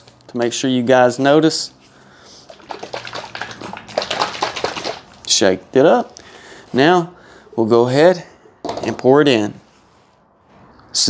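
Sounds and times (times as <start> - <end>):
liquid sloshing in plastic bottle: 2.4 - 5.3.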